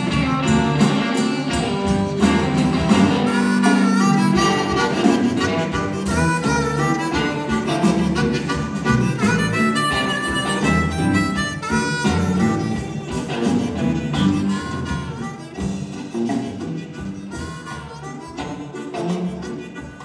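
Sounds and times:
electric guitar: 0:00.0 - 0:20.0
harmonica with bending notes: 0:00.0 - 0:20.0.

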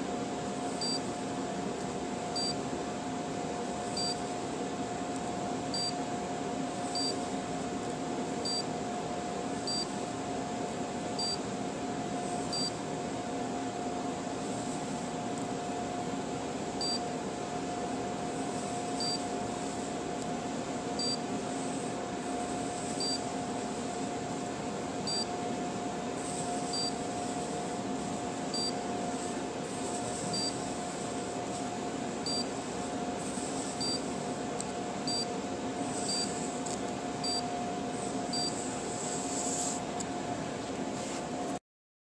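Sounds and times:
steady hum and hiss: 0:00.0 - 0:41.6.

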